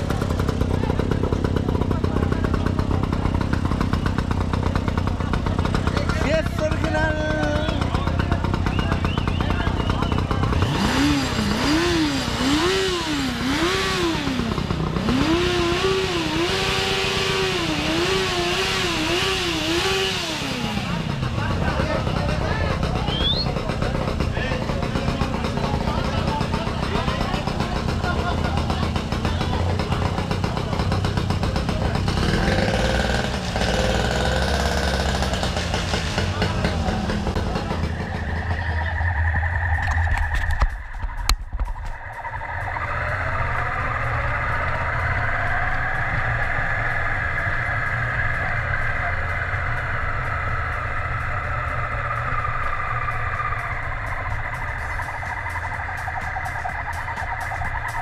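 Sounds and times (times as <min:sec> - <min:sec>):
engines running: 0:00.0 - 0:58.0
motorcycle engine revving: 0:00.0 - 0:58.0
people talking: 0:00.0 - 0:58.0.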